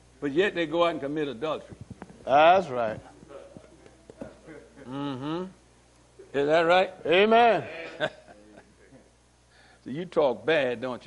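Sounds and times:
person saying mm-hmm: 0:04.8 - 0:05.6.

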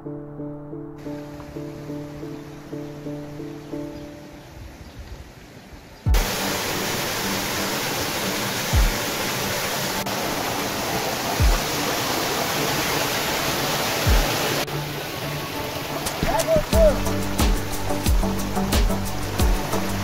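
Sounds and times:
background music: 0:00.0 - 0:04.8, 0:06.1 - 0:20.0
stream rushing over rocks: 0:05.2 - 0:20.0.

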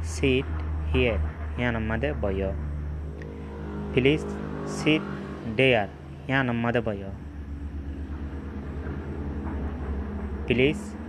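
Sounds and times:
low pulsing mechanical rumble: 0:00.0 - 0:11.0.

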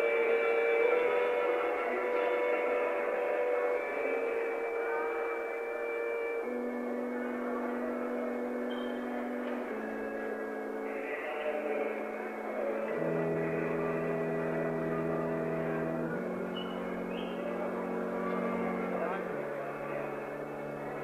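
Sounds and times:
electric organ sustained chords: 0:00.0 - 0:21.0.

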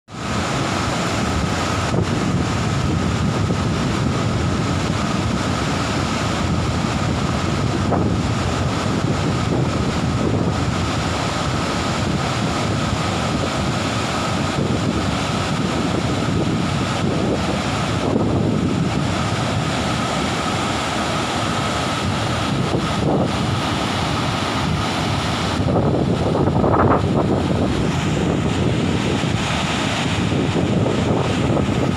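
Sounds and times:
waterfall rushing: 0:00.1 - 0:31.9.

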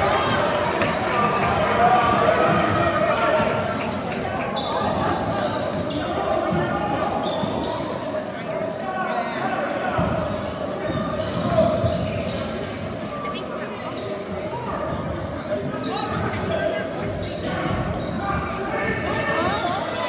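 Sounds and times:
spectators talking: 0:00.0 - 0:20.0.

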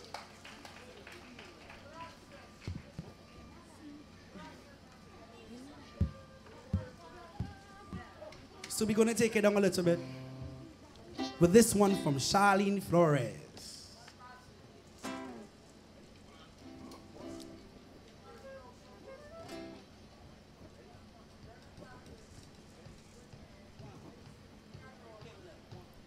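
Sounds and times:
faint voices: 0:00.6 - 0:26.0
acoustic guitar plucks: 0:09.5 - 0:13.3, 0:15.0 - 0:15.5.

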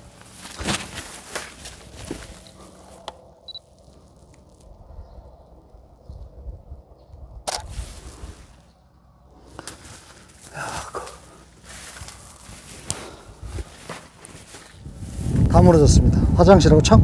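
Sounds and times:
faint low rumble: 0:00.0 - 0:16.4
camera shutter click: 0:07.5 - 0:07.7.

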